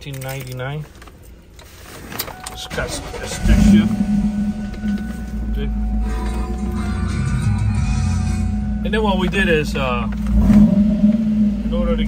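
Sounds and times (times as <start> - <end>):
car radio music: 2.2 - 12.0
car engine idling: 2.4 - 12.0.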